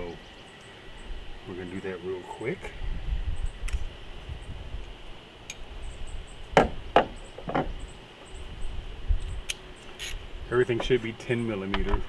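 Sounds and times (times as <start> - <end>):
sharp knocks: 6.6 - 7.7.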